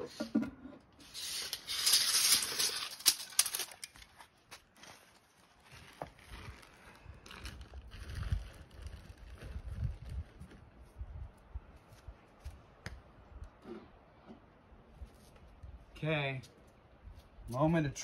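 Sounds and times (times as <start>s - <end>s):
tape measure clicks: 1.1s - 3.9s.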